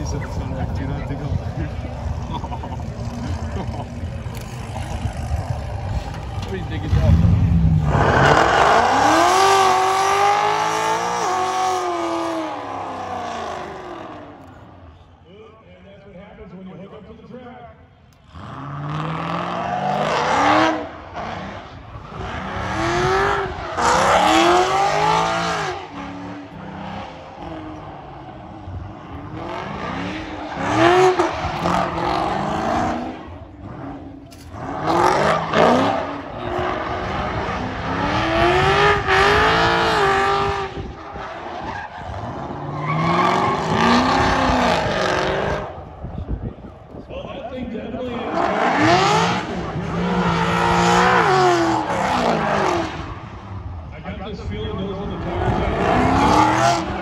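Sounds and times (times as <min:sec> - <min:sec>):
car engine revving hard: 0:06.7 - 0:14.4, 0:18.3 - 0:45.8, 0:48.2 - 0:53.5, 0:55.2 - 0:57.0
tyre squeal: 0:41.6 - 0:44.0.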